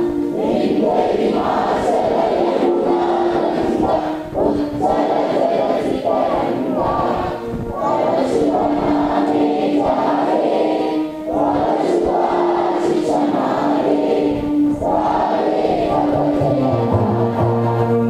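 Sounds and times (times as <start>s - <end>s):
group singing in unison: 0.0s - 18.0s.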